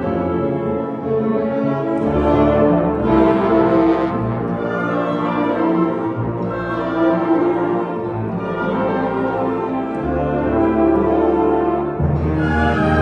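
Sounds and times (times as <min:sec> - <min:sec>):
orchestra with bowed strings: 0:00.0 - 0:13.0.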